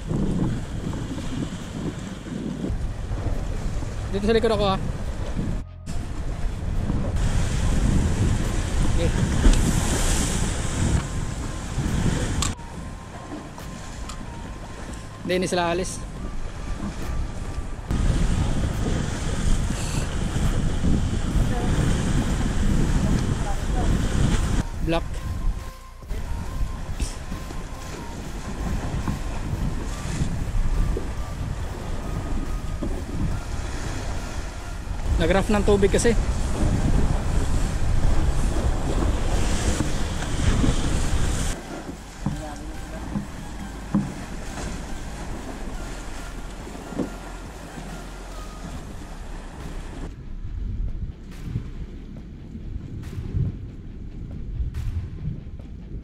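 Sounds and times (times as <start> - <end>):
sea surf washing against rocks: 0.0 - 12.7, 17.9 - 25.4, 26.2 - 50.1
wind buffeting microphone: 0.0 - 56.0.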